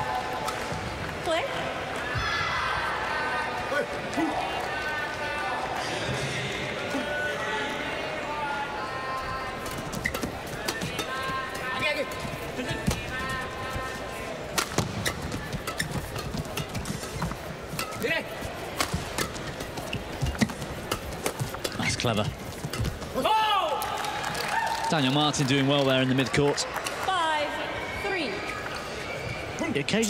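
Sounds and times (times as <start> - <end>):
crowd noise: 0.0 - 30.0
racquets hitting shuttlecock: 9.7 - 13.4, 14.4 - 23.3.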